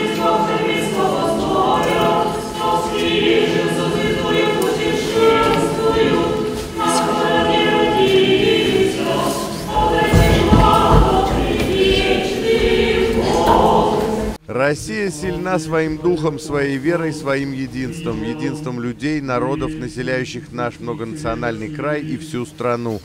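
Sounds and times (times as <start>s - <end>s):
choir singing unaccompanied chant: 0.0s - 23.0s.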